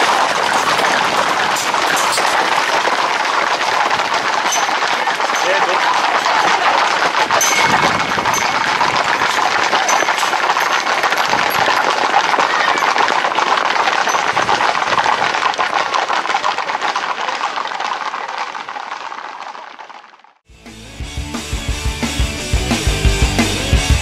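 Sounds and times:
hooves clattering on pavement: 0.0 - 20.2.

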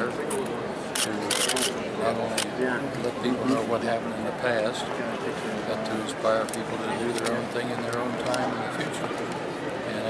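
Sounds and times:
murmur of voices: 0.0 - 10.0
camera shutters clicking: 0.9 - 1.8.

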